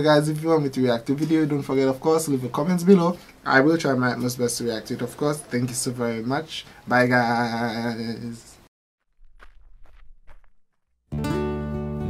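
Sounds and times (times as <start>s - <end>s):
footsteps on rocky trail: 9.1s - 11.1s.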